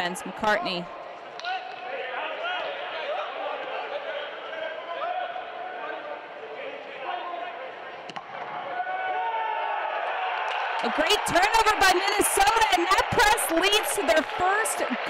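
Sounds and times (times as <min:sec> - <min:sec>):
players shouting: 0:00.0 - 0:15.0
scattered crowd voices: 0:10.7 - 0:15.0.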